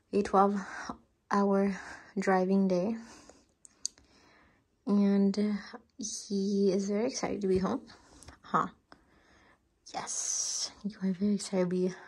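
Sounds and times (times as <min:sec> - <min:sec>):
person speaking: 0:00.1 - 0:03.2, 0:04.9 - 0:08.7, 0:09.9 - 0:12.0.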